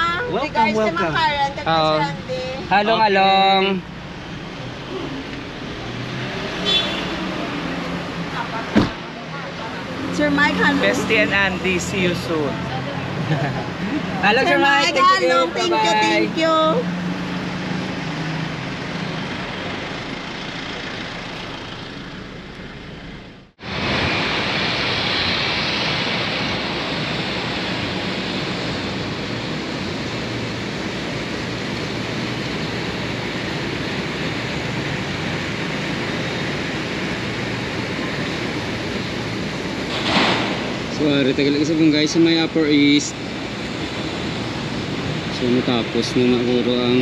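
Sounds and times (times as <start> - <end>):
moving car rumbling: 0.0 - 47.0.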